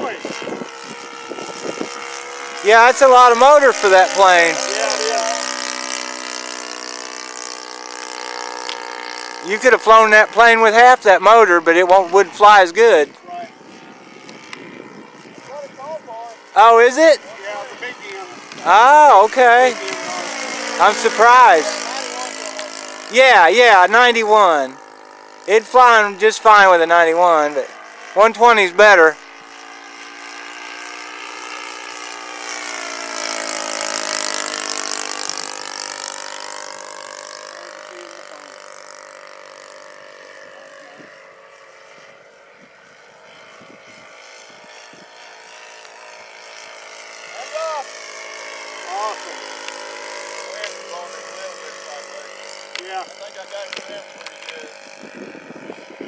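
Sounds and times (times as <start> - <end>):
model airplane engine drone: 0.0 - 56.0.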